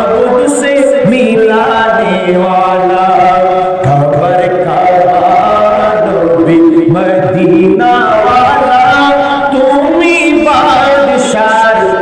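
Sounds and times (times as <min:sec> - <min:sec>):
man chanting a devotional song: 0:00.0 - 0:12.0.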